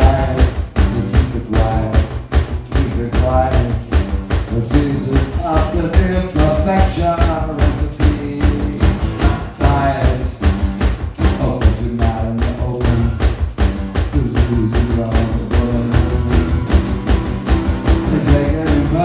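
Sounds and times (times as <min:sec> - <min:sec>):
man singing: 0:00.0 - 0:13.4, 0:14.0 - 0:16.9, 0:17.8 - 0:19.0
acoustic guitar strummed fast: 0:00.0 - 0:19.0.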